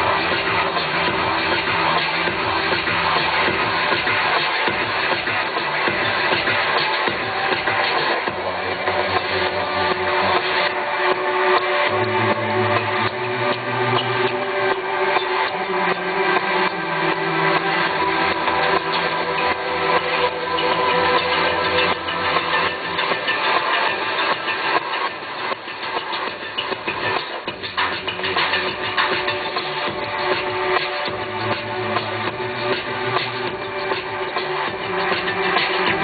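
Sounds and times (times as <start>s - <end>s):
live electronic music: 0.0s - 36.0s.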